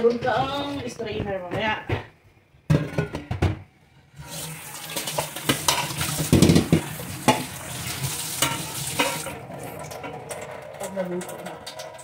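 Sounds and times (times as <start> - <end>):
metal colander clattering: 2.7 - 3.5, 4.6 - 12.0
tap water splashing into colander: 4.3 - 12.0.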